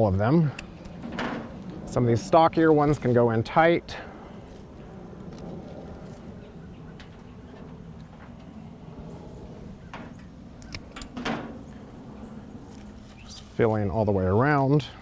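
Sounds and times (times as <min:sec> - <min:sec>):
faint background hum: 0:00.0 - 0:15.0
flower stems rustling: 0:04.0 - 0:08.2, 0:11.6 - 0:14.0.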